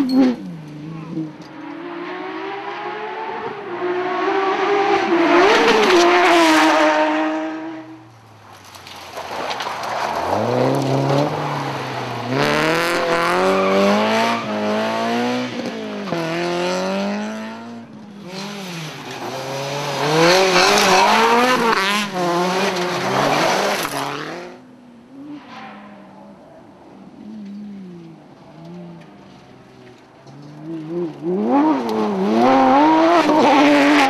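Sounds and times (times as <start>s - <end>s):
rally car engines at full throttle: 0.0s - 34.0s.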